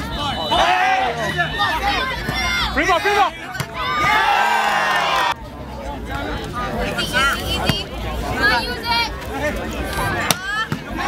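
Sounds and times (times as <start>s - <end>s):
players and spectators shouting: 0.0s - 5.4s.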